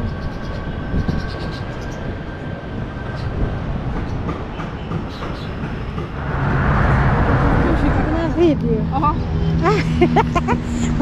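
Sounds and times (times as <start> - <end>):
wind on microphone: 0.0 - 3.8, 5.9 - 9.8
road traffic: 2.6 - 11.0.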